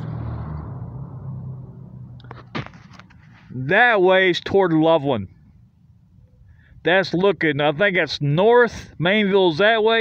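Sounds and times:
passing vehicle engine hum: 0.0 - 3.5.

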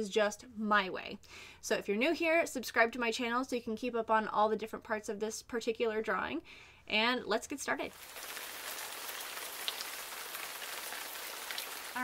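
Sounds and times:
rain-like hiss: 7.9 - 12.0.

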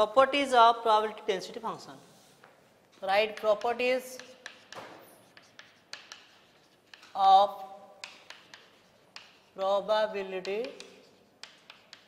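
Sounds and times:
chalk tapping and scratching: 1.6 - 12.0.

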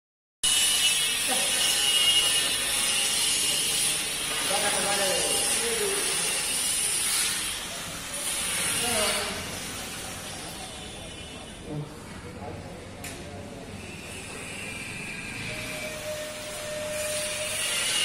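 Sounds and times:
faint indistinct voices: 1.2 - 18.0.

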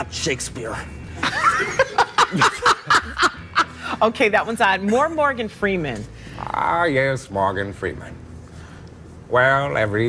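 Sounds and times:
people laughing: 1.2 - 4.0.

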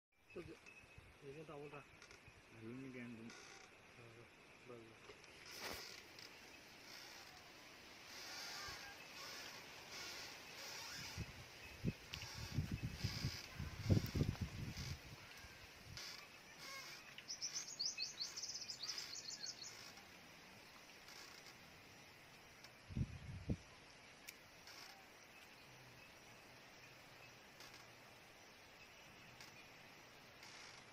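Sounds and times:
birds chirping: 0.2 - 30.9
rustling: 5.0 - 20.1.

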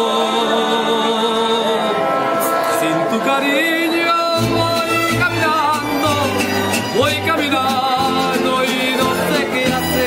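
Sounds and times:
man singing: 0.0 - 10.0
strummed guitars: 2.0 - 10.0.

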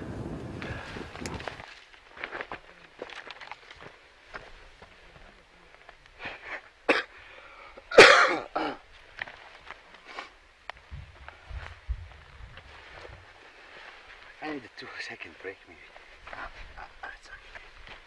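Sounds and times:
brush rustling: 0.1 - 6.0, 8.8 - 18.0
footsteps on rocky slope: 0.5 - 6.1, 10.7 - 14.7
short cough-like burst: 7.9 - 8.8.

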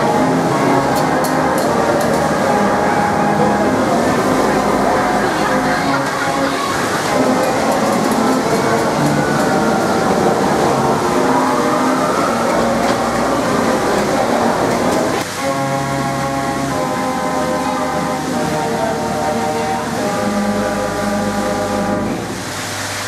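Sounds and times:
ride car running along track: 0.0 - 22.4
held music chords: 0.0 - 23.0
music: 0.0 - 23.0.

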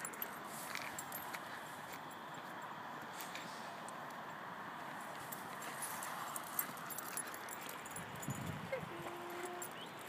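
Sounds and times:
rustling through shrubs: 4.9 - 10.0.

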